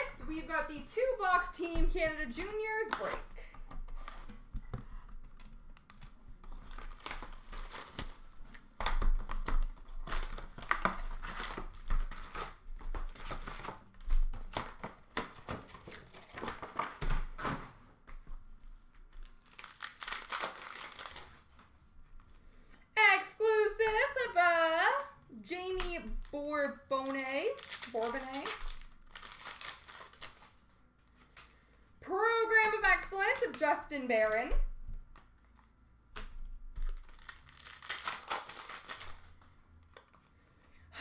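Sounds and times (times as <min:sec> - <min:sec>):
card pack wrappers tearing: 0:05.8 - 0:17.0, 0:19.2 - 0:21.6, 0:26.2 - 0:30.7, 0:36.8 - 0:39.4.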